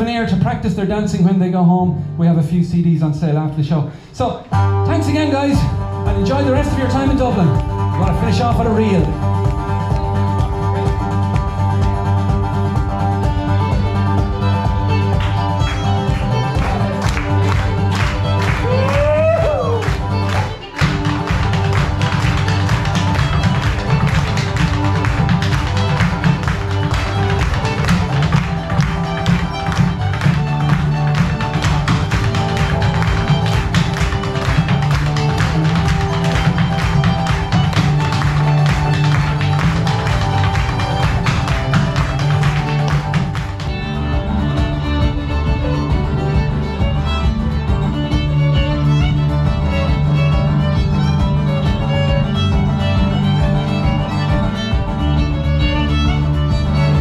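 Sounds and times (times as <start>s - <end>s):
reel on fiddle and acoustic guitar: 0.0s - 18.8s, 19.7s - 57.0s
hard shoes tapping on wooden stage: 5.5s - 57.0s.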